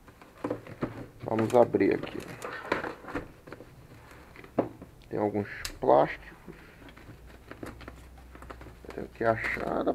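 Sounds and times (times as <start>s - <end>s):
bubble wrap rustling: 6.8s - 9.9s.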